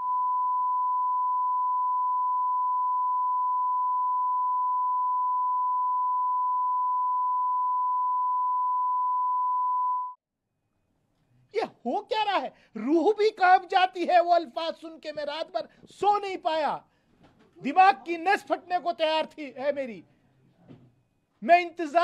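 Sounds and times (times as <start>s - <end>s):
censor bleep tone: 0.0s - 10.2s.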